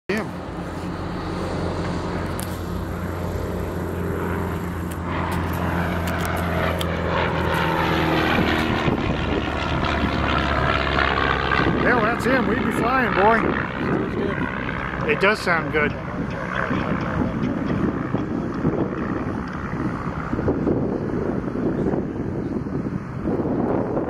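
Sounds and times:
propeller airplane engine: 0:00.1 - 0:24.0.

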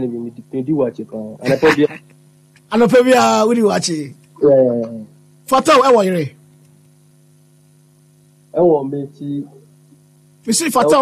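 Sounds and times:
man speaking: 0:00.0 - 0:02.0, 0:02.7 - 0:06.3, 0:08.6 - 0:09.6, 0:10.5 - 0:11.0
mains hum: 0:00.0 - 0:11.0.

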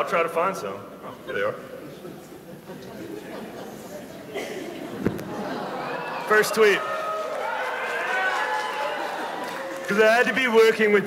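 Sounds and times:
audience murmuring: 0:01.0 - 0:06.7.

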